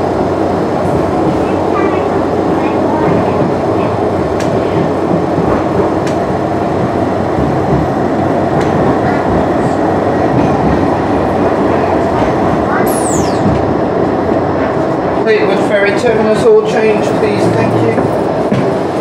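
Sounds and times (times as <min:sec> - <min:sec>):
tram motors and wheels rumbling: 0:00.0 - 0:19.0
high falling squeal: 0:12.8 - 0:13.7.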